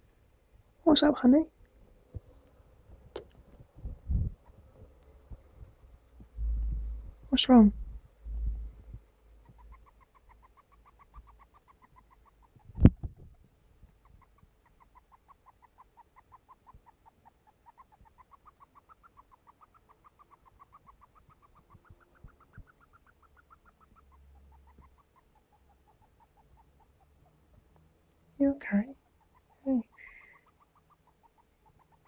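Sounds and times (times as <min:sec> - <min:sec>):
hamster squeaking: 0:04.2 - 0:04.9, 0:09.3 - 0:27.7, 0:28.6 - 0:32.0
hamster sniffing: 0:08.3 - 0:27.7, 0:28.8 - 0:32.0.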